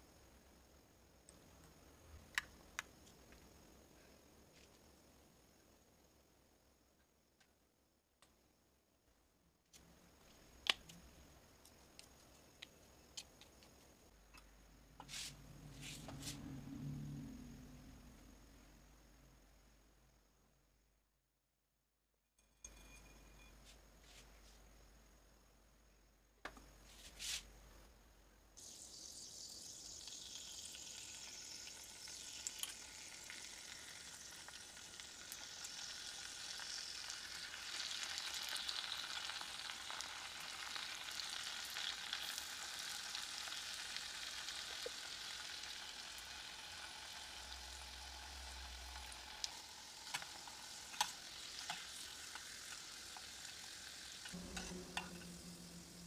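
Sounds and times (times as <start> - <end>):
fries sizzling in hot oil: 28.6 - 56.0.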